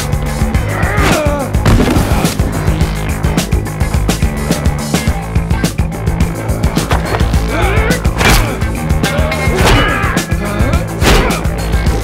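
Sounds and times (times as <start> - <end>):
action film score: 0.0 - 12.0.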